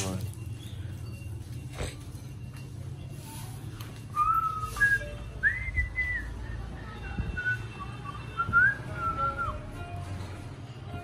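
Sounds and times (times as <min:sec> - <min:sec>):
person whistling a tune: 0:04.1 - 0:06.5, 0:07.4 - 0:09.7.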